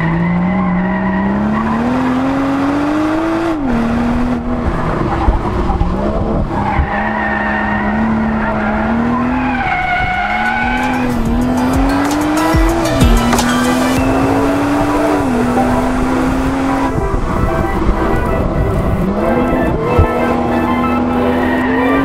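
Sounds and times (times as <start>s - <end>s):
car engine revving: 0.0s - 22.0s
tyres squealing: 6.6s - 14.0s.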